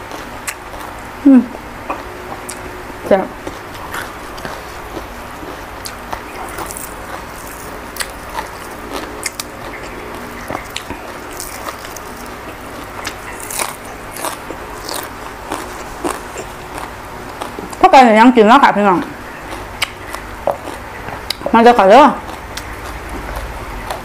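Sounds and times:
chewing crisp vegetables: 0:00.0 - 0:24.0.

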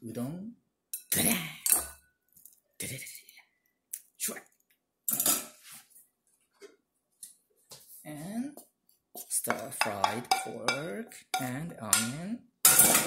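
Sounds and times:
strainer clattering against bowl: 0:09.5 - 0:12.1.

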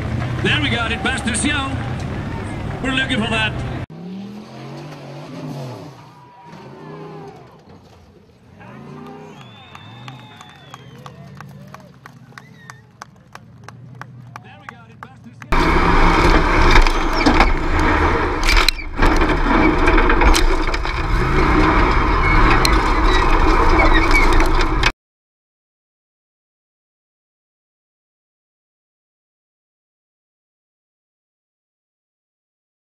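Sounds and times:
tyres spinning in loose dirt: 0:00.0 - 0:03.8, 0:05.8 - 0:24.9
buggy engine at high revs: 0:00.0 - 0:07.6, 0:08.4 - 0:24.9
voices: 0:00.4 - 0:03.8, 0:06.0 - 0:15.6.

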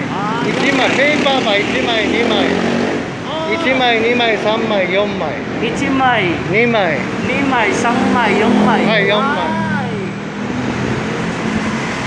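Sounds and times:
man counting: 0:00.0 - 0:02.6, 0:03.2 - 0:10.0
road traffic hum: 0:00.0 - 0:12.0.

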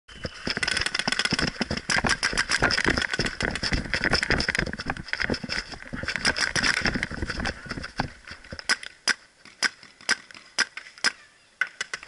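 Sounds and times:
paintball markers firing: 0:00.3 - 0:12.0.

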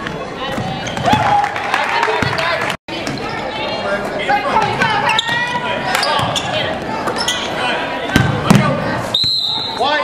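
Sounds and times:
voices calling out in hall: 0:00.1 - 0:10.0.

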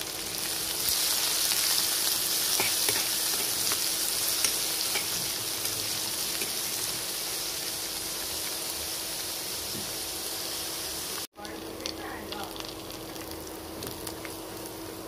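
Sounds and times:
onions sizzling in oil: 0:00.0 - 0:15.0.

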